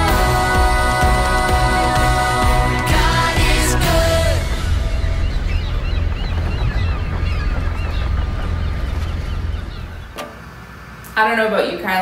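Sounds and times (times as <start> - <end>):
boat engine rumble: 0.0 - 11.0
bird calls: 4.4 - 11.0.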